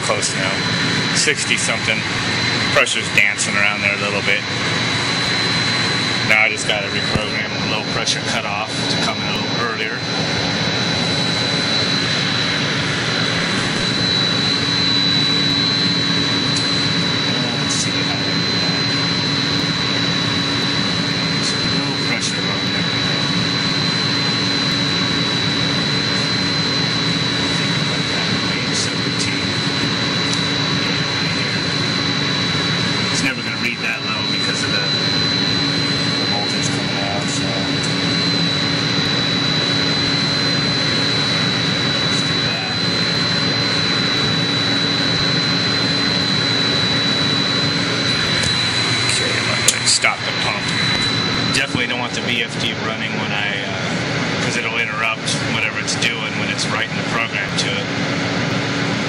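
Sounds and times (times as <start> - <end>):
pump motor whining and humming: 0.0 - 59.0.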